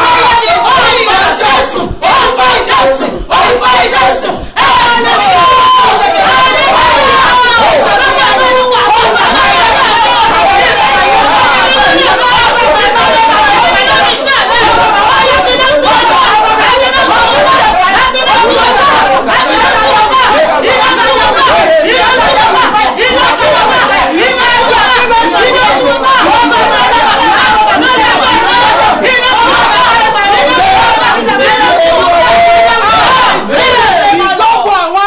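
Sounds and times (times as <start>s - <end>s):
people praying aloud: 0.0s - 35.0s.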